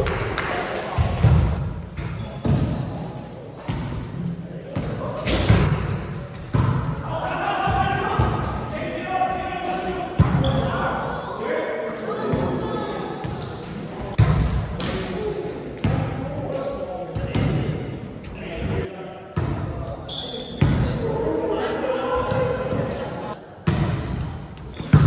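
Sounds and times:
volleyball thumps echoing in gym: 0.0s - 2.7s, 3.6s - 8.7s, 10.0s - 11.0s, 12.2s - 21.2s, 22.1s - 25.0s
players talking indistinctly: 0.6s - 23.5s.

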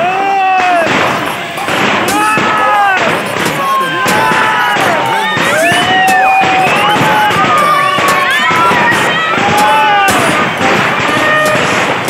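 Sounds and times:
fireworks bangs: 0.0s - 12.0s
fireworks hissing and crackling: 0.6s - 12.0s.

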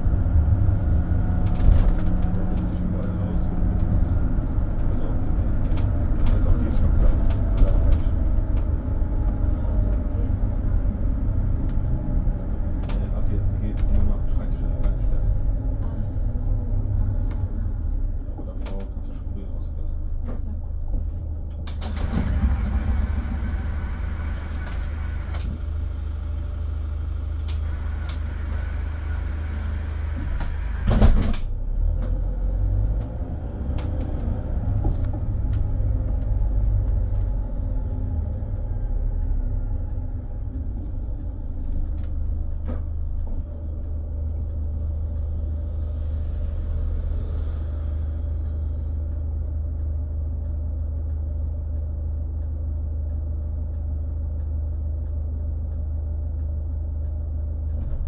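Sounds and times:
engine and tyres rumbling: 0.0s - 58.0s
interior rattles and clicks: 0.2s - 58.0s.

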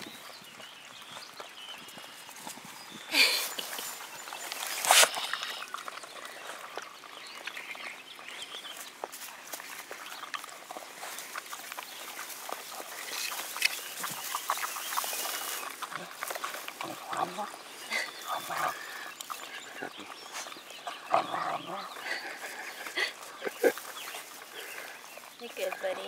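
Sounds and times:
animals licking wet clicks: 3.5s - 21.1s.

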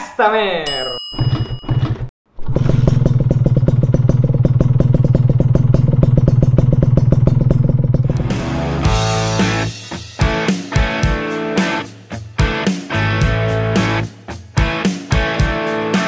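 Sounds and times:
motorcycle engine running: 2.4s - 9.6s
music: 8.1s - 16.0s.

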